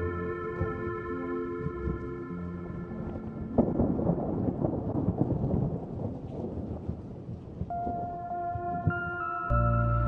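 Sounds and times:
rain: 0.0 - 10.0
thunder rumbling: 1.6 - 10.0.

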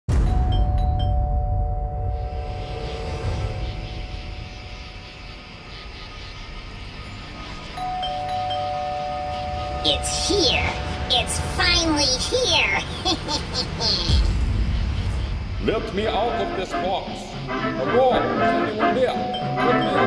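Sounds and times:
low rumble: 0.1 - 5.8, 9.3 - 17.4
two-tone doorbell chime: 0.2 - 2.2, 7.8 - 10.2.

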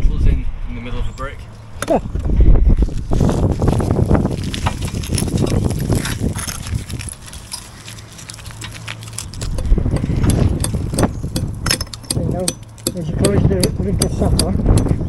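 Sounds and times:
brick fragments scraping and rattling: 2.8 - 13.0.

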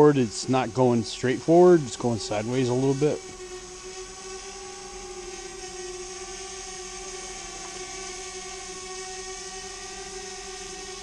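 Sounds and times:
drone propellers humming: 0.0 - 11.0.

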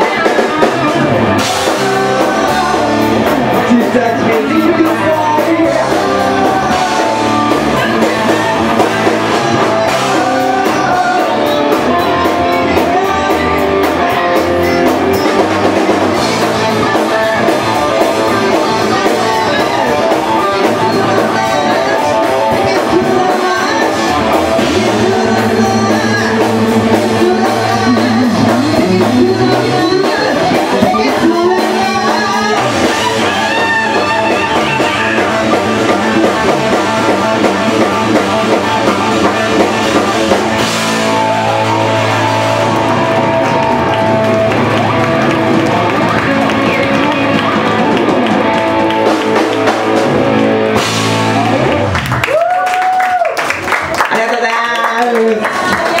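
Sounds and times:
bass guitar: 0.0 - 56.0
drum kit: 0.0 - 56.0
electric guitar: 0.0 - 56.0
rock band playing: 0.0 - 56.0.

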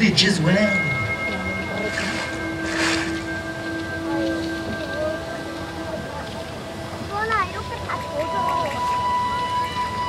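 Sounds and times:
music with long held notes: 0.0 - 10.0
water jets spraying: 0.0 - 10.0.

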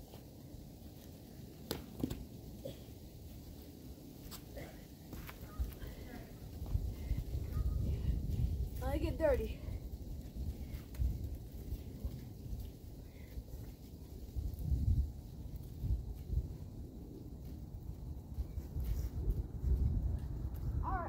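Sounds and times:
wind buffeting microphone: 5.4 - 21.0.

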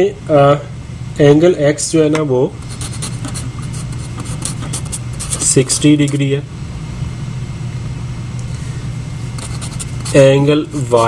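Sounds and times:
steady low hum: 0.0 - 11.0
marker scratching on paper: 2.6 - 5.6, 9.4 - 11.0.

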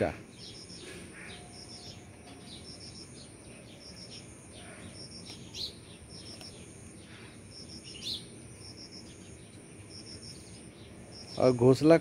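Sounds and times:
birds pipping: 0.0 - 12.0
bird sweeping chirp: 0.3 - 11.6.

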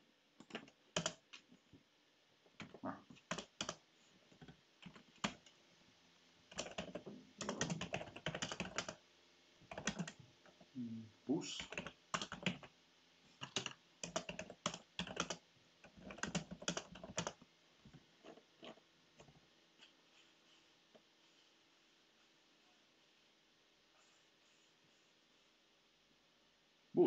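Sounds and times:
typing on computer keyboard: 0.4 - 1.4, 2.6 - 3.8, 4.4 - 5.5, 6.5 - 9.0, 9.6 - 10.2, 11.6 - 12.7, 13.4 - 17.4.

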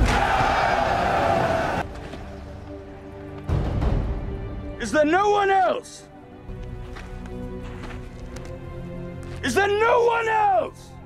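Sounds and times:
army shouting and roaring: 0.0 - 1.8.

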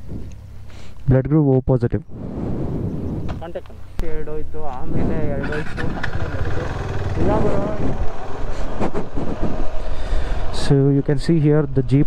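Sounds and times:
motorcycle engine moving off: 2.2 - 12.0
people's voices: 3.3 - 12.0.

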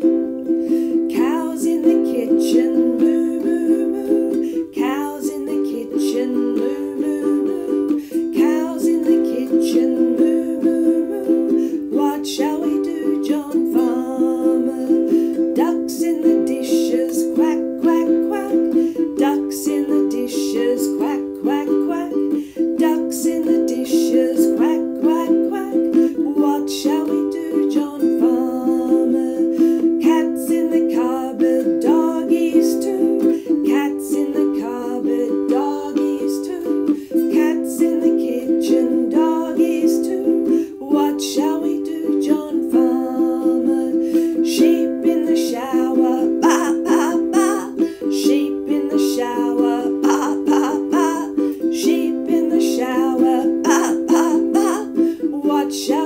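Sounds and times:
strummed acoustic string instrument: 0.0 - 56.0.

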